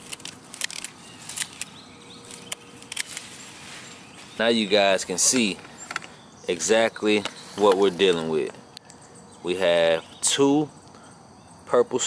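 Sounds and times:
leafy vines rustling: 0.0 - 10.5.

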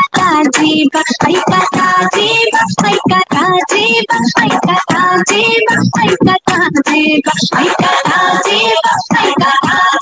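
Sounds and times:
singing over a backing track: 0.0 - 10.0.

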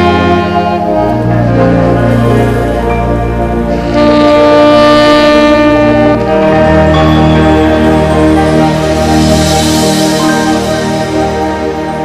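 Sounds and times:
tenor saxophone long note: 0.0 - 11.2
recorded accompaniment: 0.0 - 12.0.

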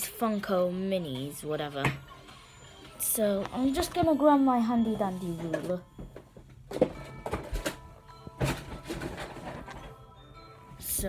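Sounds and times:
quiet background music: 0.0 - 11.0
pencil case handling noise: 5.3 - 10.0.

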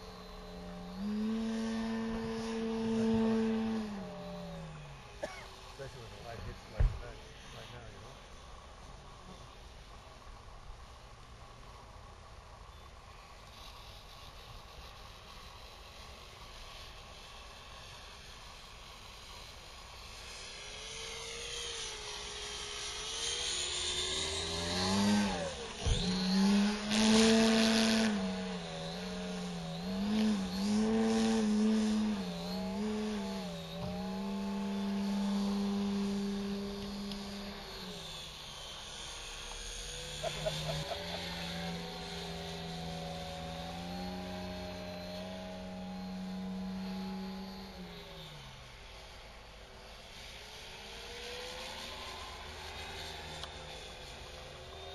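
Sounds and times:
model airplane engine drone: 0.0 - 54.9.

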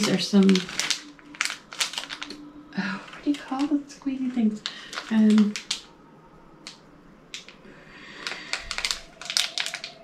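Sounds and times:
plastic packet clicks and crinkles: 0.0 - 5.9, 6.6 - 10.0.

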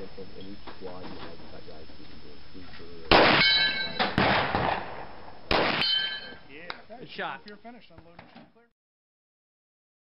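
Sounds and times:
steel target ringing: 3.1 - 4.2, 5.5 - 6.5
pistol shots: 3.1 - 6.3.

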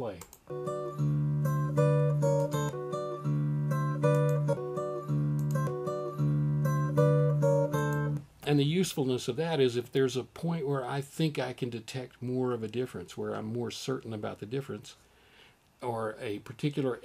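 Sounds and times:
acoustic guitar over speakers: 0.4 - 8.3.

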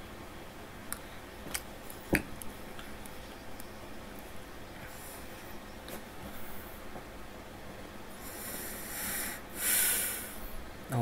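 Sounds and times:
man exhaling into microphone: 8.2 - 10.4.

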